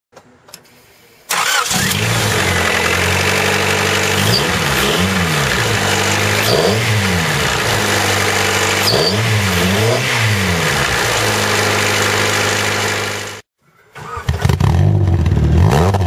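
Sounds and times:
car engine starting and idling: 0:00.2 - 0:13.4, 0:14.0 - 0:16.0
engine revving: 0:01.3 - 0:16.0.

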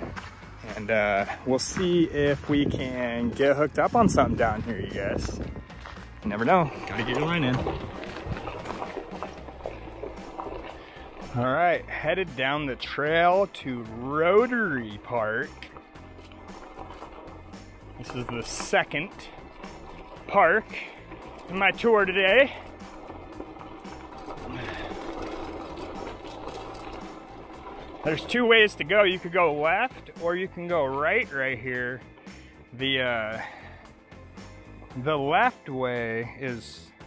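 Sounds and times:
background music: 0:00.0 - 0:37.0
bicycle tyres crunching gravel: 0:04.3 - 0:33.7.

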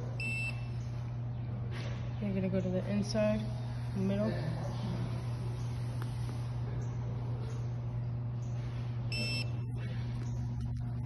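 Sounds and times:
steady low hum: 0:00.0 - 0:11.0
short high-pitched beep: 0:09.1 - 0:09.5.

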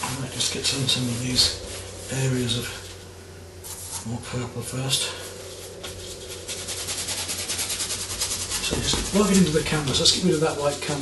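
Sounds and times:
bristle brush scrubbing canvas: 0:00.0 - 0:04.2, 0:05.2 - 0:11.0.

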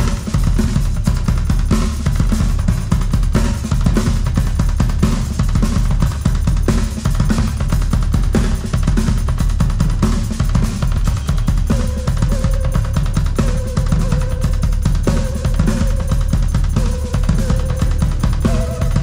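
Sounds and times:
bass drum and snare hits: 0:00.0 - 0:19.0
heavy fuzz rock music: 0:00.0 - 0:19.0.

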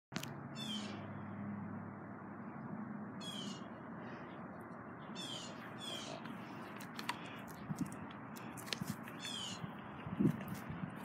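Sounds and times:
high-pitched animal calls: 0:03.2 - 0:03.7, 0:05.2 - 0:06.3, 0:09.1 - 0:09.7.

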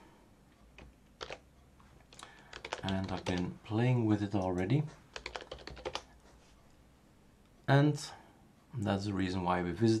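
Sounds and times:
computer keyboard keystrokes: 0:00.8 - 0:01.5, 0:02.1 - 0:03.5, 0:04.3 - 0:06.2.

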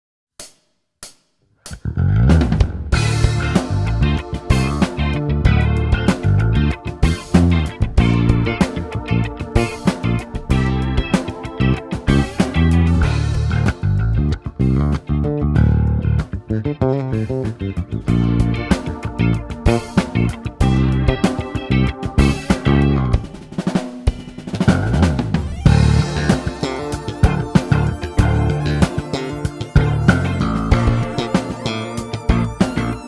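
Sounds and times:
drums: 0:00.4 - 0:14.4, 0:17.3 - 0:33.0
electric bass guitar: 0:01.7 - 0:23.7, 0:24.4 - 0:33.0
hi-hat count-in beats: 0:03.0 - 0:15.0, 0:17.2 - 0:33.0.

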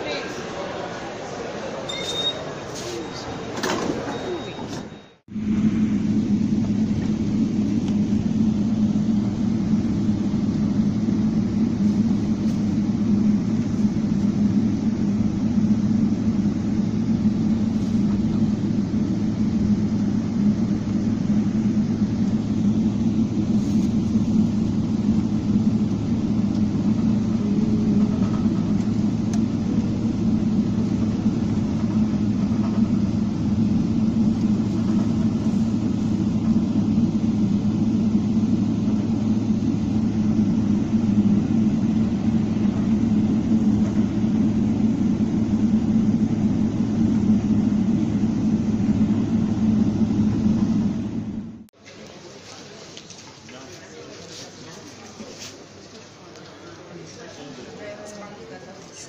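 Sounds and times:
jet cabin engine rumble: 0:00.0 - 0:51.8.

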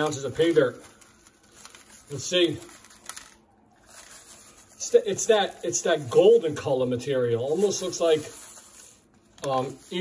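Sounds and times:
dirt pouring into plastic pan: 0:00.0 - 0:00.8
plastic bag rustling: 0:00.0 - 0:10.0.

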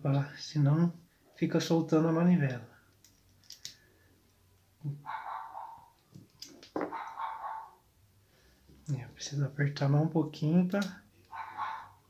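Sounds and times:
light clicks of reel parts: 0:02.4 - 0:04.4
dog barking: 0:05.0 - 0:06.0, 0:06.9 - 0:07.8, 0:11.3 - 0:12.0.

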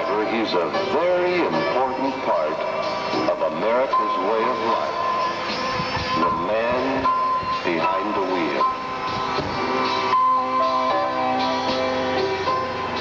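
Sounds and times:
country music backing: 0:00.0 - 0:13.0
steady high-pitched tone: 0:00.0 - 0:13.0.

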